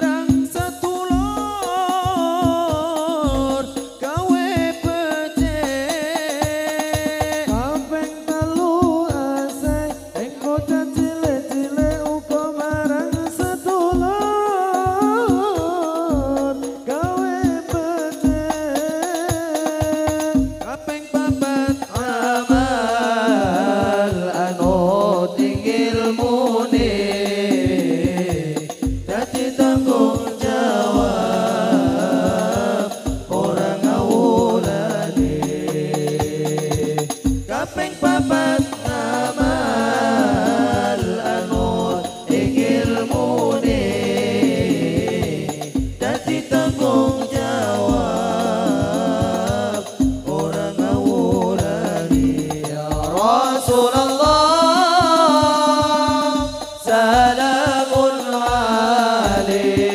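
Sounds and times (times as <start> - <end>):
voices singing: 0.0 - 59.9
low frame drum beats: 0.3 - 57.8.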